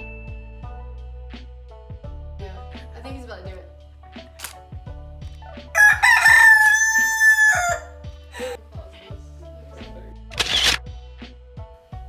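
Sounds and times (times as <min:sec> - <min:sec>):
rooster crowing: 0:05.8 - 0:08.6.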